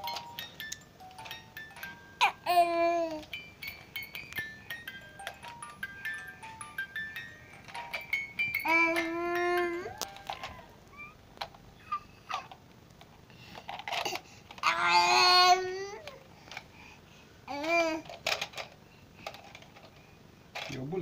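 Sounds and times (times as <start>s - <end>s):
baby squealing: 8.6s - 11.2s.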